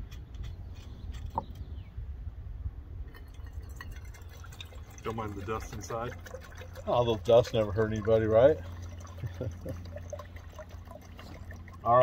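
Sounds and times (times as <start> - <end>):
water pouring and splashing: 3.1 - 12.0.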